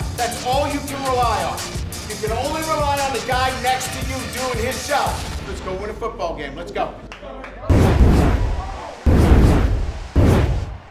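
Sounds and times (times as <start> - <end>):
cinematic boom impacts: 7.7 - 10.9.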